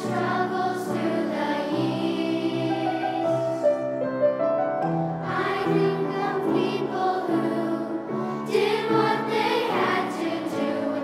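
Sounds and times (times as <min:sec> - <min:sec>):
children's choir singing: 0:00.0 - 0:03.9, 0:05.1 - 0:11.0
upright piano: 0:00.0 - 0:11.0.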